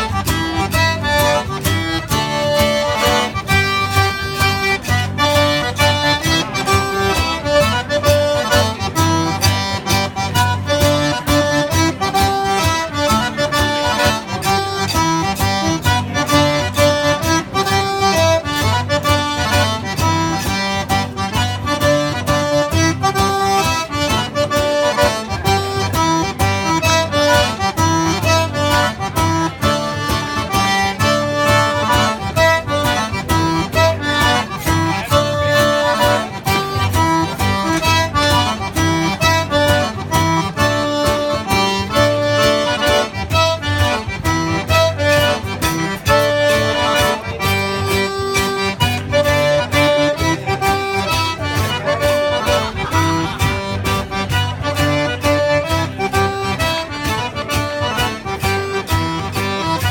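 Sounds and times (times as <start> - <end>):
accordion melody: 0.0 - 59.9
zydeco band playing live: 0.0 - 59.9.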